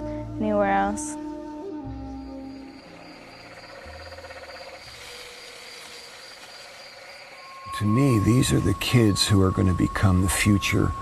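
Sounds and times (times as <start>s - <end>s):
insects chirping with pulsing trill: 1.2s - 11.0s.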